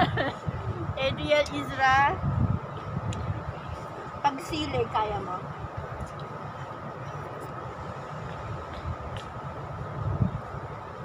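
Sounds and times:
faint high hum: 0.0 - 11.0
wind buffeting microphone: 0.0 - 11.0.

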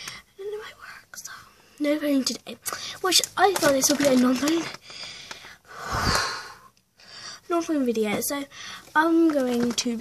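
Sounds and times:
girl whispering: 0.0 - 4.9
girl speaking: 0.4 - 4.8, 7.4 - 10.0.

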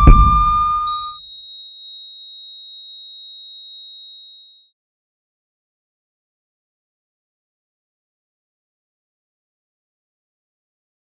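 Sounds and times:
high-pitched electronic tone: 0.0 - 1.2.

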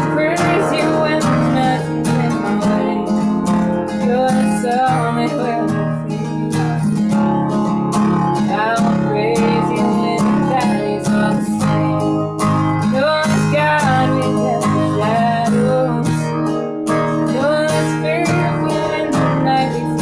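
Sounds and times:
acoustic guitar strummed: 0.0 - 20.0
woman singing: 0.0 - 20.0.

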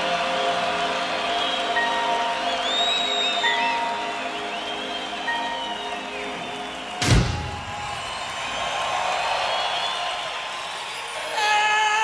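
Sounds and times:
crowd whistling: 0.0 - 11.6
stadium crowd cheering: 0.0 - 12.0
loud crash hit: 7.0 - 8.0.

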